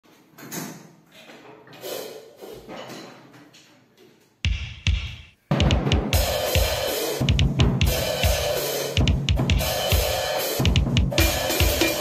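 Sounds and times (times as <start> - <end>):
soft bumps on drum kit: 4.5 - 8.3.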